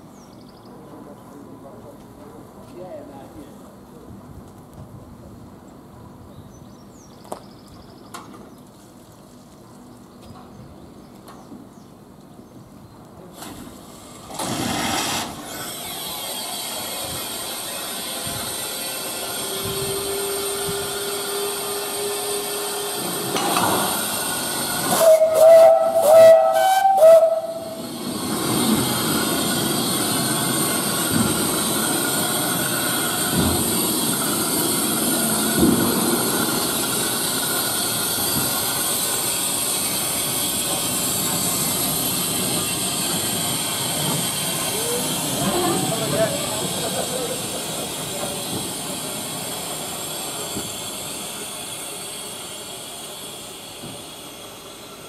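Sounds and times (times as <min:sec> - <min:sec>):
steam locomotive hissing: 0:13.3 - 0:55.0
steam whistle blasts: 0:24.8 - 0:27.9.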